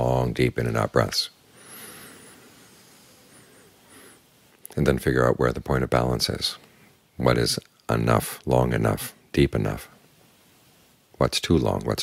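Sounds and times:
faint long breath: 0:01.5 - 0:04.3.

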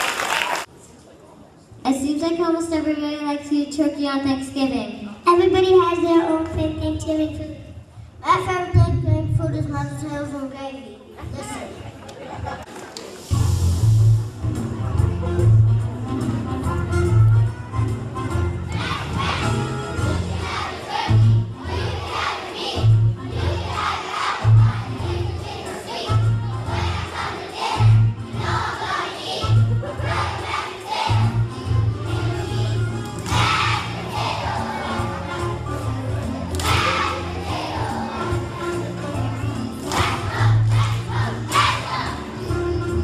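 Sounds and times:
instrumental accompaniment: 0:13.2 - 0:43.0
children singing and shouting: 0:18.6 - 0:43.0.

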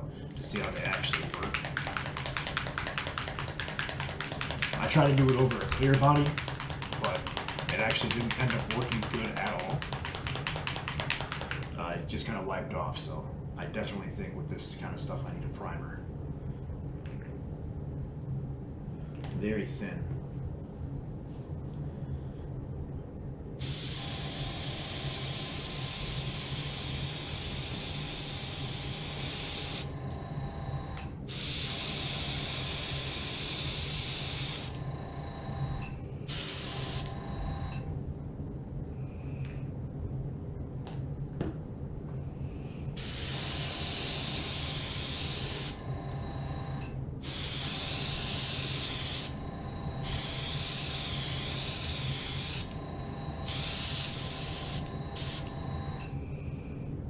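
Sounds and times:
steady low hum: 0:00.0 - 0:57.0
airbrush spraying hiss: 0:23.6 - 0:29.9, 0:31.3 - 0:34.8, 0:36.3 - 0:37.2, 0:43.0 - 0:45.8, 0:47.2 - 0:49.4, 0:50.0 - 0:52.8, 0:53.4 - 0:55.6.

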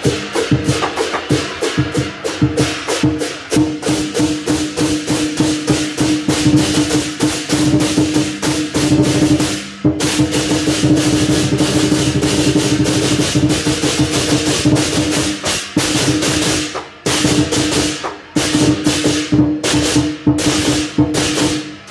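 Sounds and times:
drum beaten in steady rhythm: 0:00.0 - 0:21.9
hand cymbals clashing: 0:00.0 - 0:21.9.

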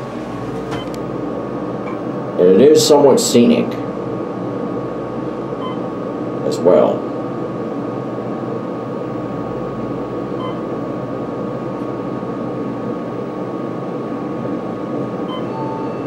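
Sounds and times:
elevator hydraulic pump hum: 0:00.0 - 0:16.0
thin high whine: 0:15.0 - 0:16.0.

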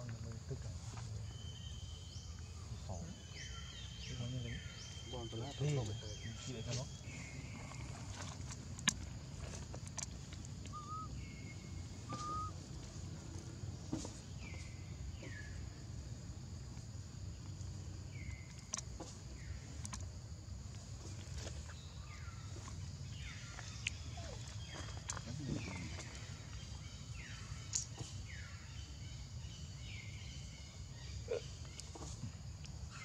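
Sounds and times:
falling chirped animal calls: 0:10.7 - 0:12.6.

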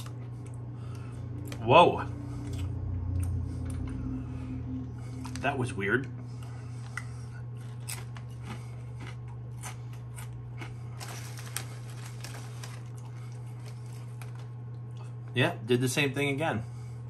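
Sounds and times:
chewing potato chips: 0:00.0 - 0:04.1, 0:05.0 - 0:05.6, 0:06.3 - 0:15.2
steady low hum: 0:00.0 - 0:17.0
foil chip bag crackling: 0:09.7 - 0:14.7.

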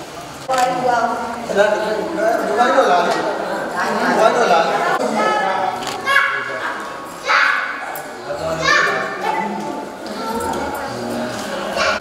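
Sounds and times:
voices talking in echoing hall: 0:00.0 - 0:12.0
child-like voices: 0:04.9 - 0:12.0.

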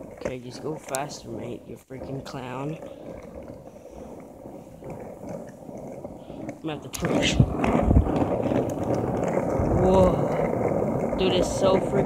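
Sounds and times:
skateboard wheels on stony road: 0:00.0 - 0:12.0.

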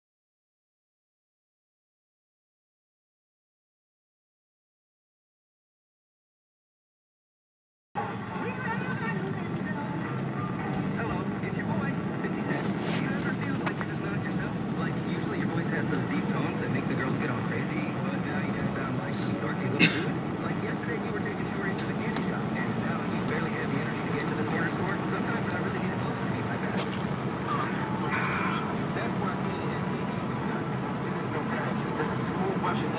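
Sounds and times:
car road and engine noise: 0:08.0 - 0:32.9.

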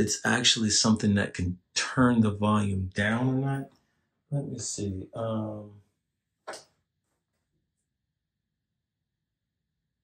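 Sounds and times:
person speaking a word: 0:00.0 - 0:03.6, 0:04.3 - 0:05.7.

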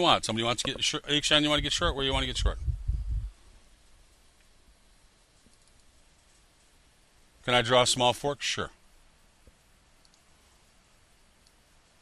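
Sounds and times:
faint computer mouse clicks: 0:05.4 - 0:06.4, 0:10.0 - 0:10.3.

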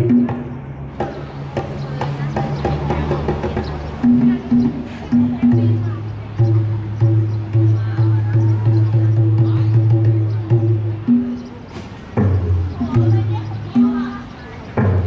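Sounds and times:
sharp percussion strikes: 0:00.0 - 0:15.0
traditional ensemble playing: 0:00.0 - 0:15.0.

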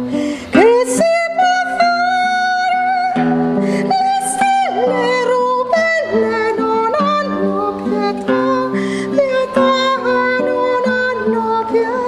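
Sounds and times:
woman singing long notes: 0:00.4 - 0:12.0.

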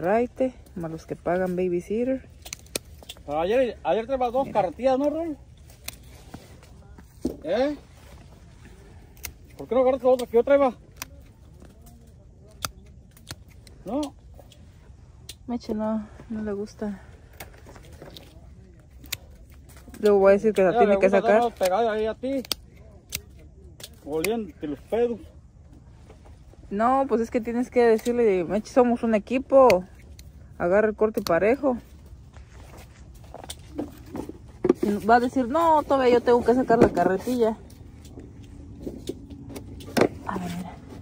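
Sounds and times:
pruning shears snipping stems: 0:00.0 - 0:03.6, 0:04.5 - 0:06.7, 0:08.7 - 0:15.5, 0:17.3 - 0:24.5, 0:27.4 - 0:31.6
handling sounds picking grapes: 0:00.0 - 0:41.0
sharp click of shears: 0:02.4 - 0:03.2.

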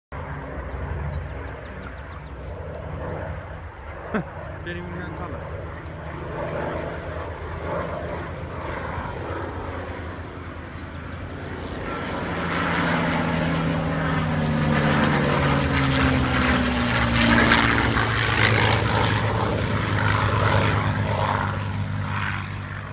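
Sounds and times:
propeller planes flying past: 0:00.1 - 0:22.9.

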